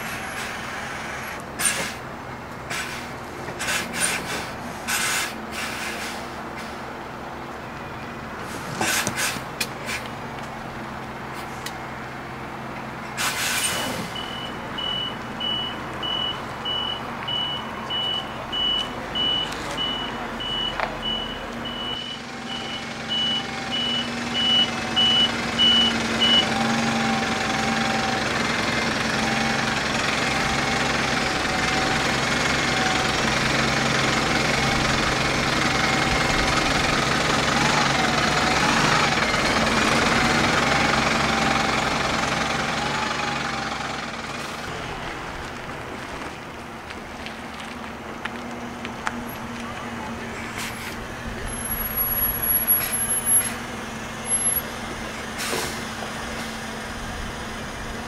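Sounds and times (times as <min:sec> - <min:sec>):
diesel engine running: 0:00.0 - 0:58.0
reversing alarm beeps: 0:14.2 - 0:26.5.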